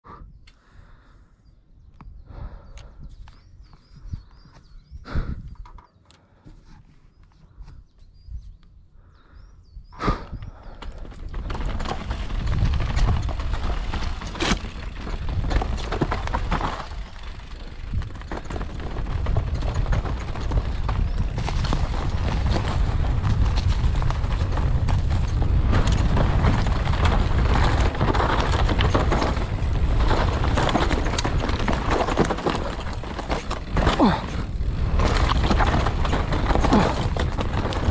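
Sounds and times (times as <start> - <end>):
rush of wind and tyre noise: 9.2 - 37.9
bike knocks and rattles: 10.8 - 37.9.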